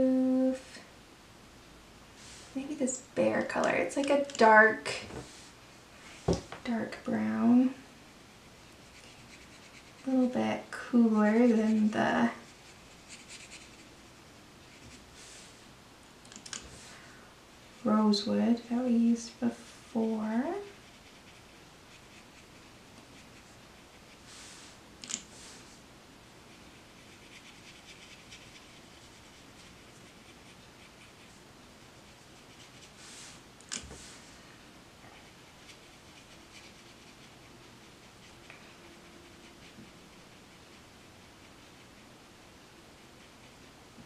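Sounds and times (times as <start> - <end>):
brush stroking on paper: 2.2 - 15.6, 17.6 - 25.8, 26.4 - 42.2, 42.8 - 44.0.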